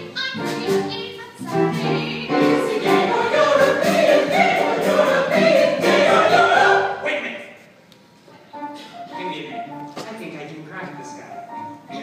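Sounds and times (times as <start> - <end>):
choir singing: 1.6 - 7.3.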